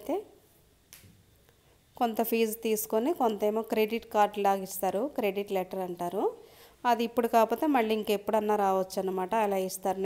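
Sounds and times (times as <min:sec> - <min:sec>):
woman's voice: 0:00.0 - 0:00.4, 0:02.0 - 0:10.0.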